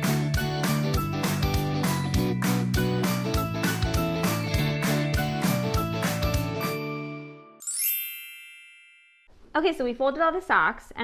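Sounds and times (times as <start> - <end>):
background music: 0.0 - 8.3
sparkly chime sound effect: 6.4 - 9.3.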